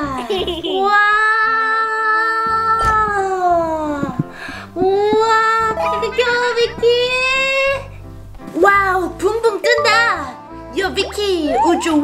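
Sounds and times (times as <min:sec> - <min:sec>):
woman exclaiming wow: 0:11.4 - 0:12.0.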